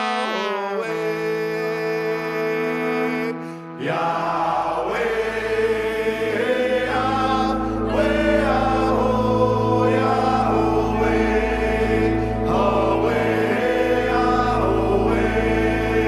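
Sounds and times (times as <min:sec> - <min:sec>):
held chord: 0:02.5 - 0:16.0
steady low drone: 0:03.7 - 0:16.0
group of voices chanting: 0:03.8 - 0:16.0.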